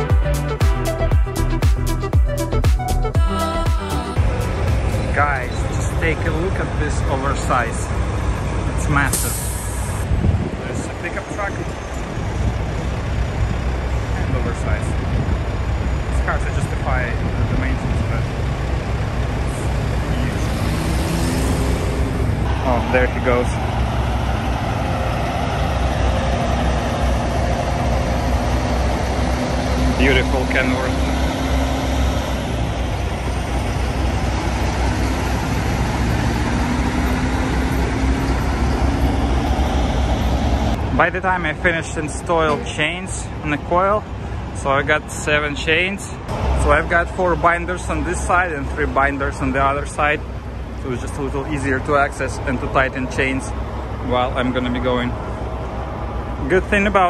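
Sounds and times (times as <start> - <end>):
diesel truck engines rumbling: 0.0 - 57.0.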